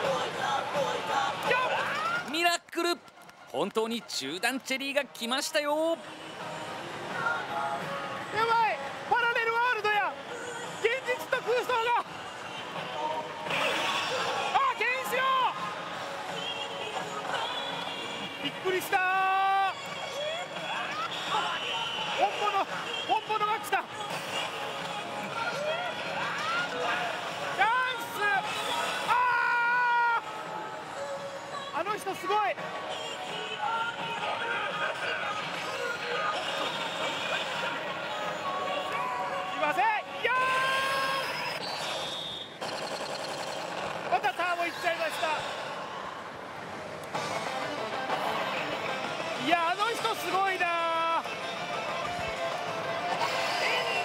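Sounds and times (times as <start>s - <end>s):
excited shouting: 0.0s - 2.4s, 25.4s - 30.4s, 38.9s - 41.4s
gaming parlour din: 39.2s - 45.9s, 46.6s - 54.0s.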